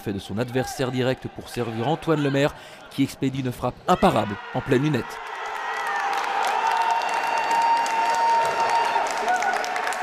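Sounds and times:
spectators clapping and cheering: 0:04.9 - 0:10.0.

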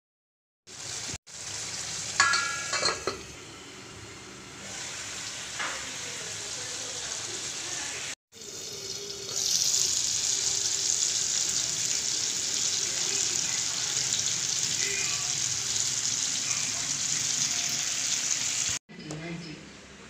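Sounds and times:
curry sizzling in a frying pan: 0:00.7 - 0:18.8.

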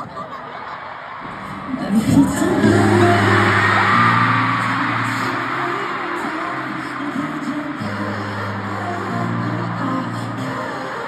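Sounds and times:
crowd screaming: 0:00.0 - 0:11.0
live pop concert music: 0:00.0 - 0:11.0.

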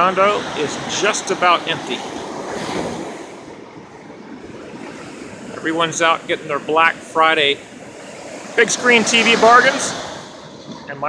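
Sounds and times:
ocean surf on sand: 0:00.0 - 0:11.0.

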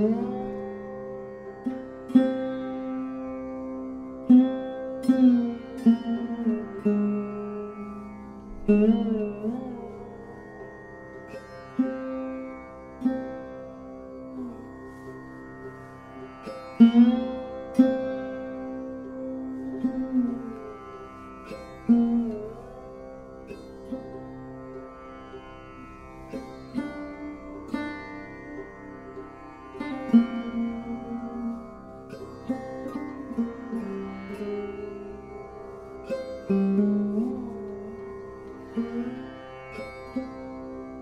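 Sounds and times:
sarode plucked melody: 0:00.0 - 0:41.0.

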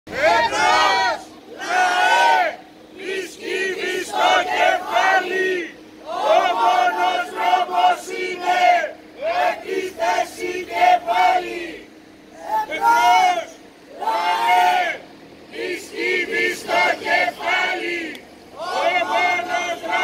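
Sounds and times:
protesters chanting slogans: 0:00.1 - 0:20.0
person shouting through megaphone: 0:12.4 - 0:15.0.

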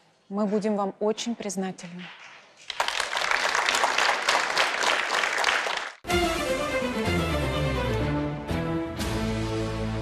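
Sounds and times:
studio audience applauding: 0:02.6 - 0:06.0.

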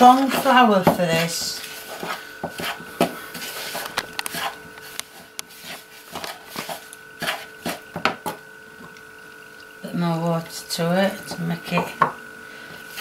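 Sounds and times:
hand mixing dough: 0:00.0 - 0:13.0.

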